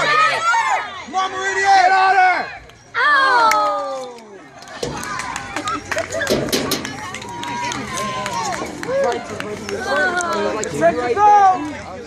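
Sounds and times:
people shouting and calling out: 0:00.0 - 0:12.0.

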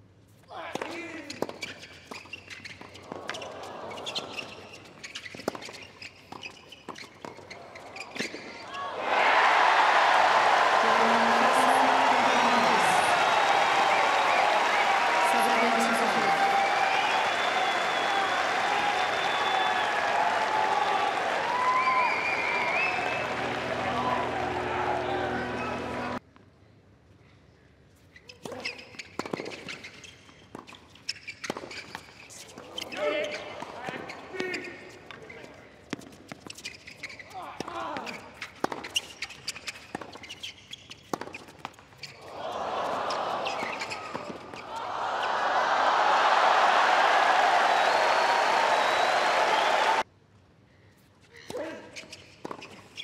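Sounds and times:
shoe squeaks: 0:01.0 - 0:08.8, 0:28.0 - 0:42.3, 0:43.4 - 0:44.8, 0:51.2 - 0:53.0
crowd cheering and applauding: 0:08.8 - 0:26.2, 0:42.3 - 0:50.0.

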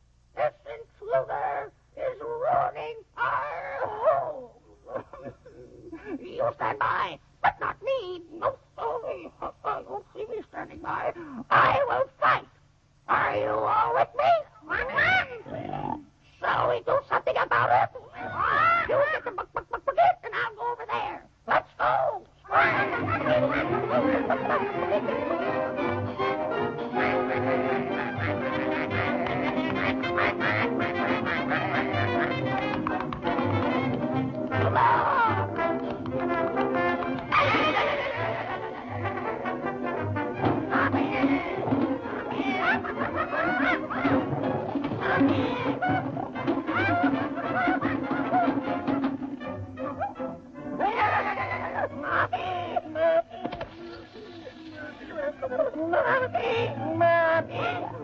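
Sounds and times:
low film soundtrack hum: 0:00.0 - 0:58.0
cartoon character animal-like cry: 0:01.1 - 0:09.7, 0:13.1 - 0:21.2, 0:21.8 - 0:25.7, 0:27.0 - 0:32.8, 0:34.5 - 0:35.6, 0:37.2 - 0:39.5, 0:40.4 - 0:48.6, 0:50.8 - 0:58.0
quacking sounds: 0:22.5 - 0:52.8.

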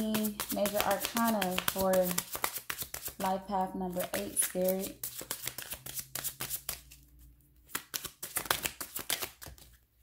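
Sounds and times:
cards being shuffled: 0:00.0 - 0:09.8.

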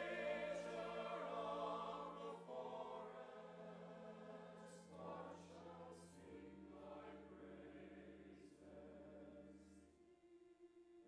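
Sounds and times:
men's choir singing softly: 0:00.0 - 0:10.0.

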